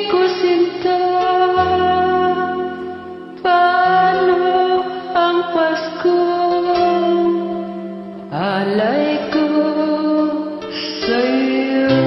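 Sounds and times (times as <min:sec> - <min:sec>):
backing track chord: 0:00.0 - 0:12.0
woman singing karaoke: 0:00.0 - 0:12.0.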